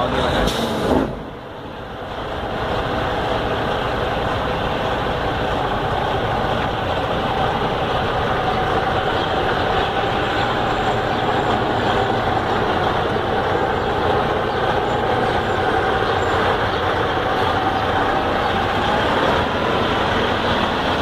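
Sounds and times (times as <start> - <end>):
diesel truck engine idling: 0.0 - 21.0.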